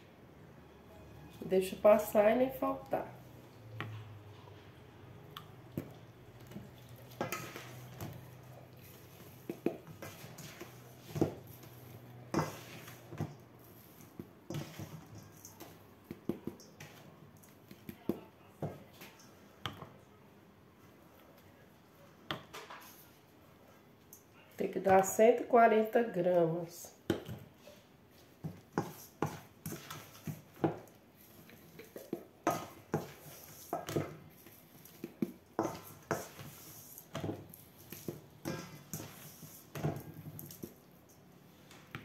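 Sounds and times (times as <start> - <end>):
plastic spatula scraping metal bowl: 8.8 - 15.2, 31.2 - 40.6.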